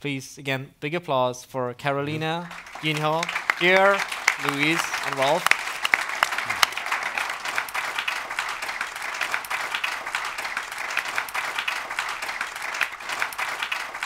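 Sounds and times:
audience clapping: 0:02.1 - 0:14.0.

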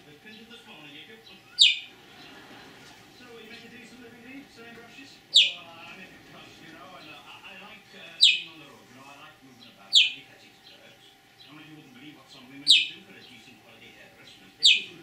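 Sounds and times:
budgerigar chirping: 0:01.2 - 0:02.2, 0:05.2 - 0:05.7, 0:08.1 - 0:08.6, 0:09.6 - 0:11.5, 0:12.6 - 0:13.5, 0:14.2 - 0:15.0.

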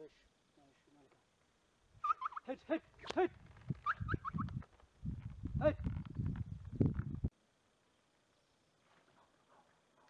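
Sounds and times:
person calling: 0:02.0 - 0:04.5.

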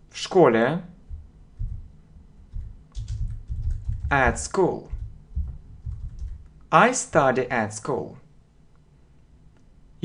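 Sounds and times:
typing on computer keyboard: 0:02.5 - 0:06.5.

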